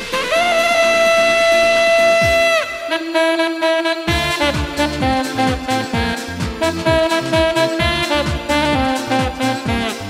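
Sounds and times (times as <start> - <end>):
dance backing track: 0.0 - 10.0
tenor saxophone held notes: 0.0 - 10.0
kick drum thumping: 2.2 - 2.6, 4.1 - 10.0.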